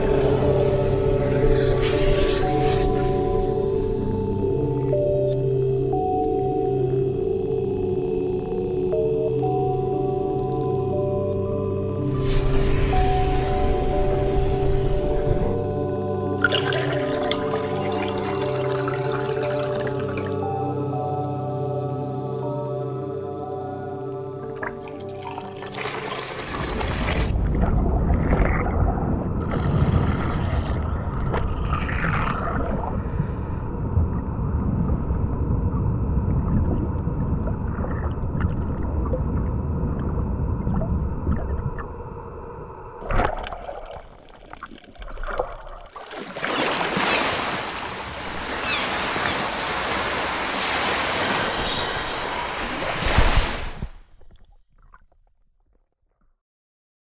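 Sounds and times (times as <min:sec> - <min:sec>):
film music drone: 0:00.0 - 0:26.8
water sounds: 0:00.0 - 0:55.5
deep underwater rumble: 0:26.5 - 0:46.0.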